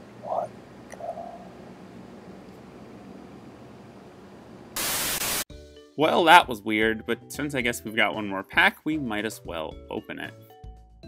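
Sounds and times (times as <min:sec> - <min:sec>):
faint hiss: 0:04.8 - 0:05.4
static burst: 0:04.8 - 0:05.5.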